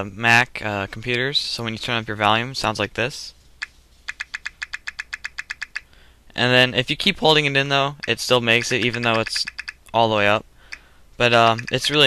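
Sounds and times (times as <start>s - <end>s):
rapid volume-change pops: 7.0s - 12.0s.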